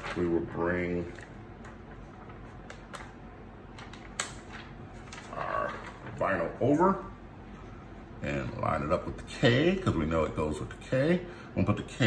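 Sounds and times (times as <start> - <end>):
vinyl sheet clicks and rustle: 0.0 - 6.3.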